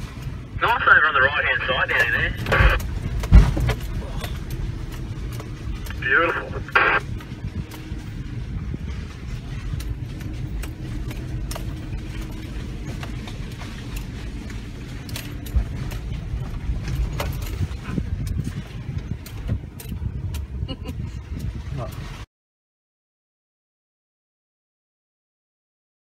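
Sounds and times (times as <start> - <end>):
engine and tyre rumble: 0.0 - 22.3.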